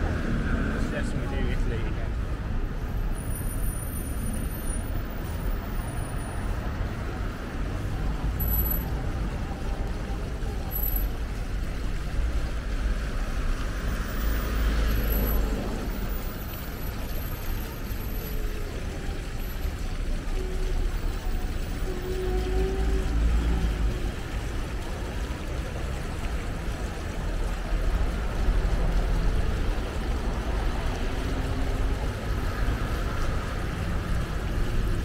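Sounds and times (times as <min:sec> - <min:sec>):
city traffic rumble: 0:00.0 - 0:35.0.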